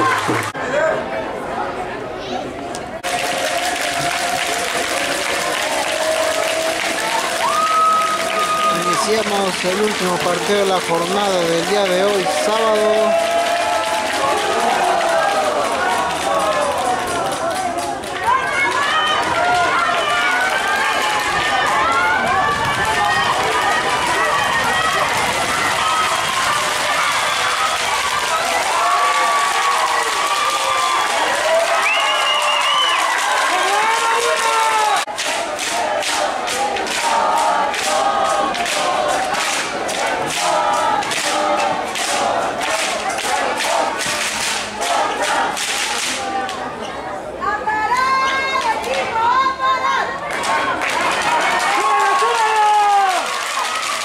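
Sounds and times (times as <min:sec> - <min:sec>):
crowd shouting and cheering: 0:00.0 - 0:54.0
murmur of voices: 0:00.0 - 0:54.0
fast sharp claps: 0:03.0 - 0:46.3.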